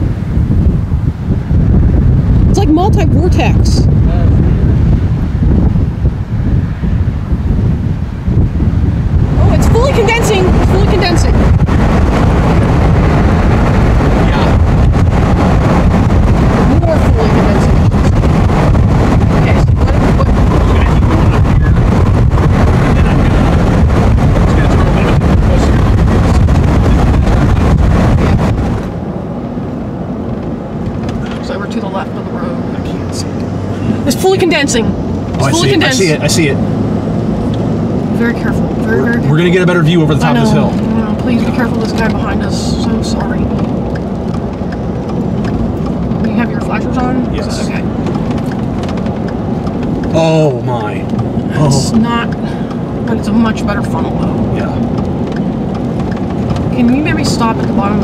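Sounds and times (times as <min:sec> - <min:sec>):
car driving on road: 0:00.0 - 0:58.0
wind buffeting microphone: 0:00.0 - 0:58.0.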